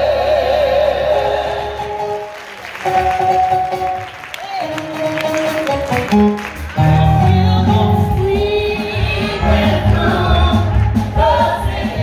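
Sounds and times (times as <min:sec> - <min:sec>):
woman singing with vibrato: 0:06.8 - 0:11.8.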